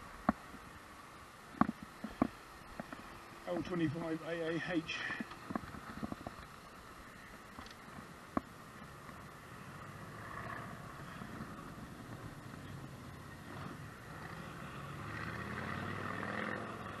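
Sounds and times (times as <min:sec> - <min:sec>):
bicycle road noise rumble: 0:00.0 - 0:17.0
wind noise: 0:04.9 - 0:08.2.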